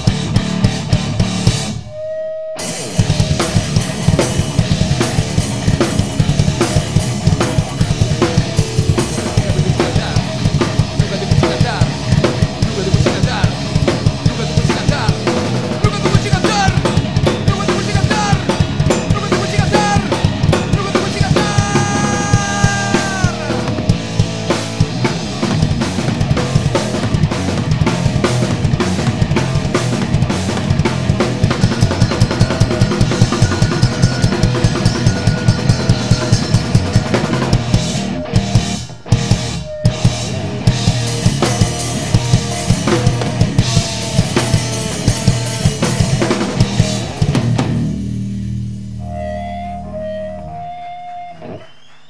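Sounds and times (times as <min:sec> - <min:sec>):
live rock band playing: 0:00.0 - 0:51.7.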